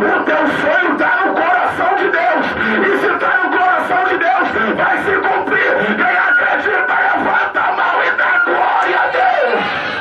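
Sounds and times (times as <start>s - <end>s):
preacher shouting into microphone: 0.0s - 9.6s
congregation voices: 0.0s - 10.0s.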